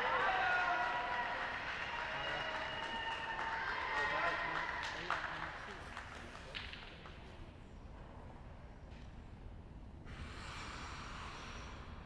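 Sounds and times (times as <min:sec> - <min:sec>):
audience applause: 0:00.0 - 0:06.5
sharp claps: 0:00.0 - 0:07.3.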